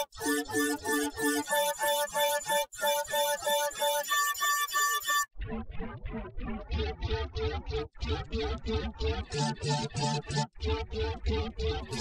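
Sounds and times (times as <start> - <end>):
electronic music with synth notes: 0.0 - 12.0.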